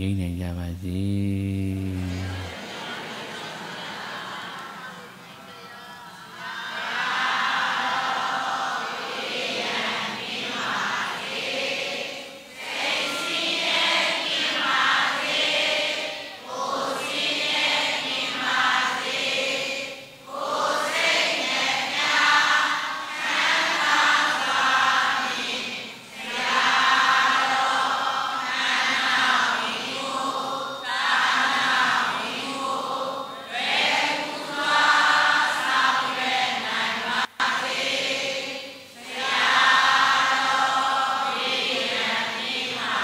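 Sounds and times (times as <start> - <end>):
congregation chanting in unison: 1.6 - 43.0.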